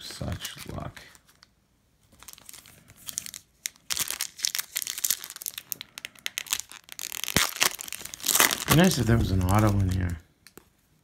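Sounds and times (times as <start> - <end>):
foil wrapper crinkling: 2.1 - 10.2.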